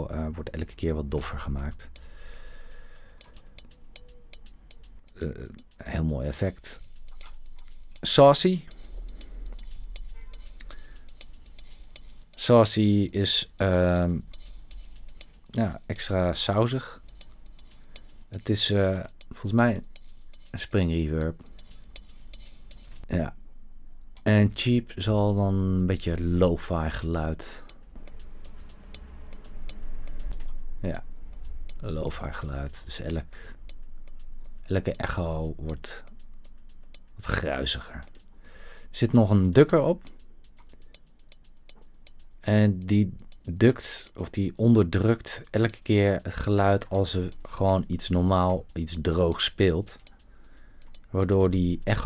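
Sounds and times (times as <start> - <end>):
hi-hat ticks with echo: 0.0 - 23.4, 24.0 - 52.0
low hum: 0.0 - 52.0.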